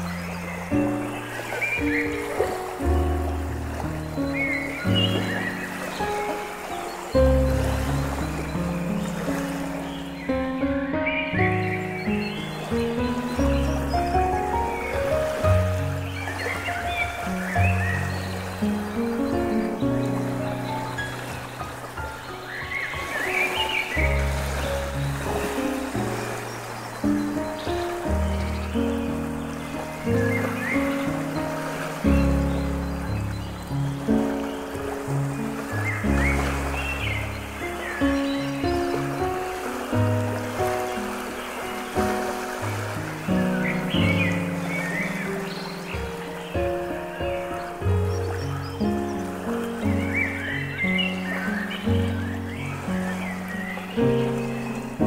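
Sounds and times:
running water: 0.0s - 55.0s
slow soft piano music: 0.0s - 55.0s.

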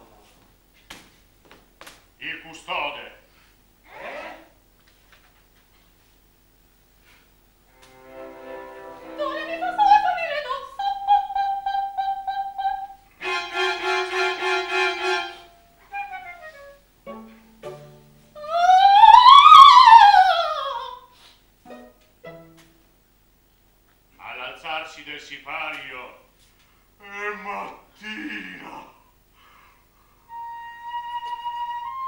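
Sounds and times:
bowed strings chamber music: 7.6s - 10.4s, 13.2s - 18.4s, 21.7s - 22.9s.

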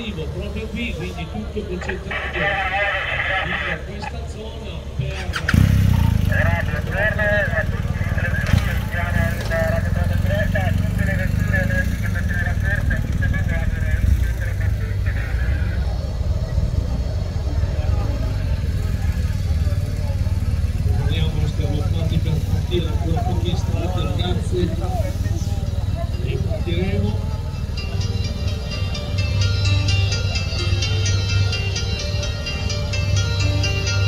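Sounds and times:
people talking: 0.0s - 31.6s.

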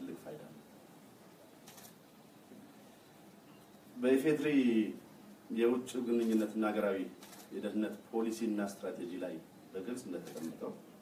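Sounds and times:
man speaking into microphones: 0.0s - 0.7s, 4.0s - 10.9s.

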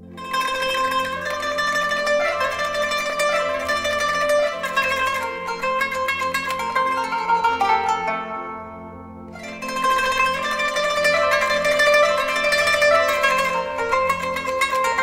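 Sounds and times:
plucked zither melody: 0.0s - 15.0s.

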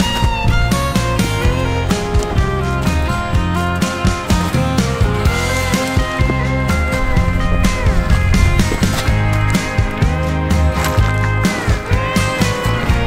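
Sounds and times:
background music with sustained notes: 0.0s - 13.0s.

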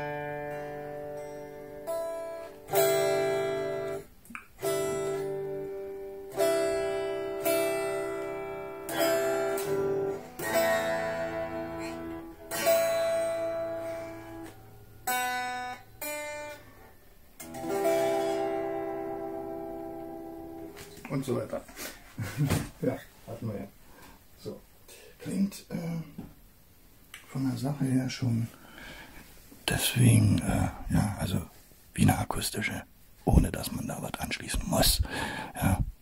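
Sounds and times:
unplugged electric guitar chords: 0.0s - 16.7s, 17.4s - 21.0s.

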